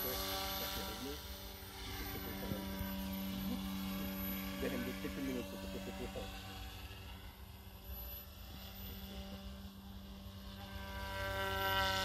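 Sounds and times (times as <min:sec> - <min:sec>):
model helicopter motor whine: 0:00.0 - 0:12.0.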